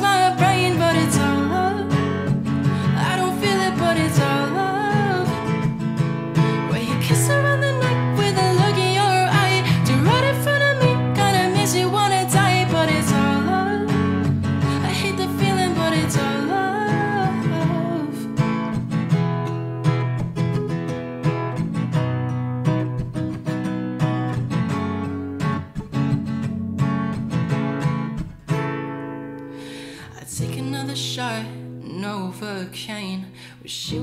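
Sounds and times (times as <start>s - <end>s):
acoustic guitar strumming: 0.0s - 33.1s.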